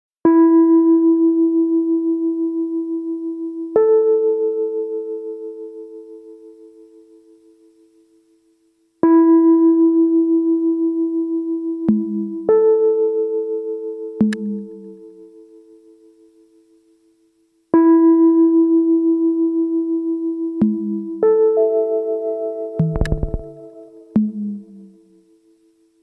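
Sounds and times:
electronic music with bell tones: 22.8s - 23.7s.

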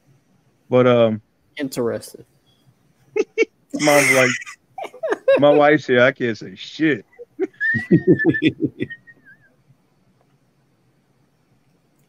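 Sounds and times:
burst of laughter: 3.2s - 5.5s, 7.2s - 9.3s.

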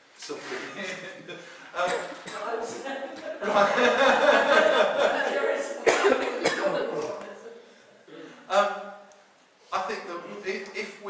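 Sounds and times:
man coughing: 1.8s - 2.7s, 5.8s - 6.9s.

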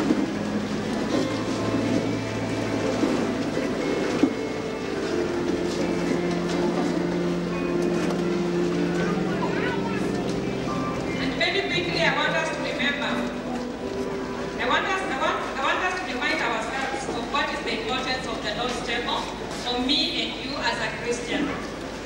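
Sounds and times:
music of long held chords: 0.0s - 17.8s.

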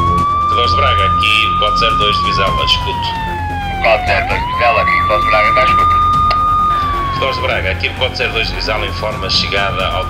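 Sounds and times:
fire engine siren wailing: 0.0s - 10.0s.

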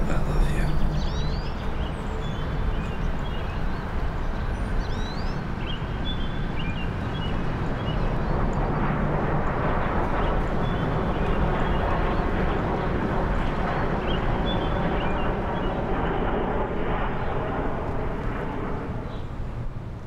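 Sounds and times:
small birds chirping: 0.0s - 9.0s
outdoor background rumble: 0.0s - 20.0s.

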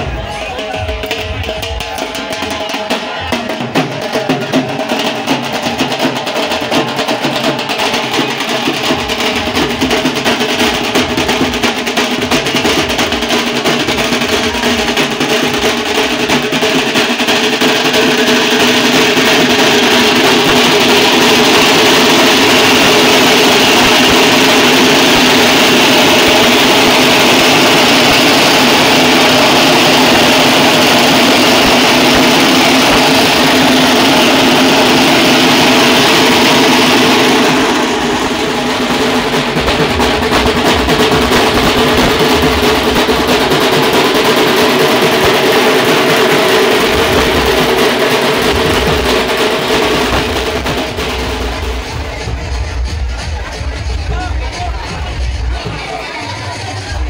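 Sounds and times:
dhol drums beaten with sticks: 0.0s - 57.0s.

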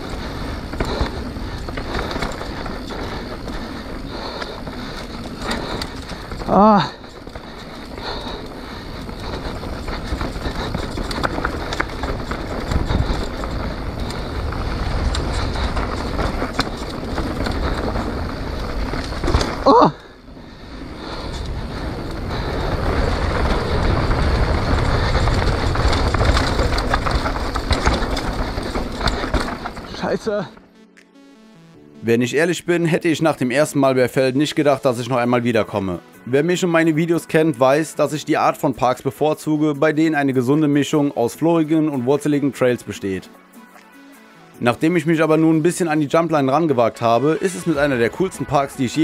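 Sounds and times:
wind rushing over microphone: 0.0s - 29.9s
bike tyres rolling on dirt: 0.0s - 30.9s, 32.0s - 49.0s.

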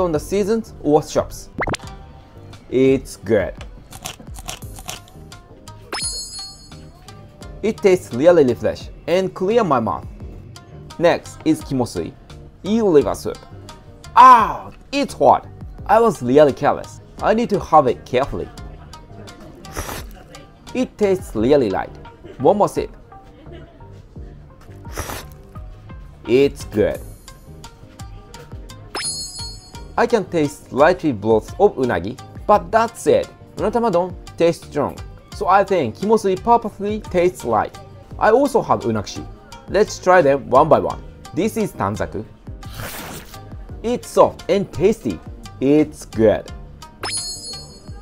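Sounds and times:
quiet background music: 0.0s - 48.0s
crisp chewing crunches: 3.9s - 5.2s
person slurping soup: 19.6s - 20.2s, 24.9s - 25.4s, 42.6s - 43.5s.

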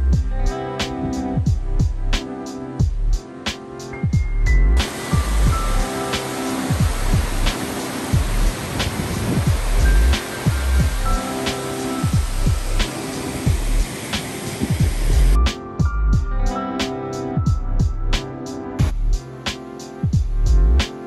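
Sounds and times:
music with deep drum beats: 0.0s - 16.6s, 17.4s - 21.0s
waterfall over rocks: 4.8s - 15.4s.

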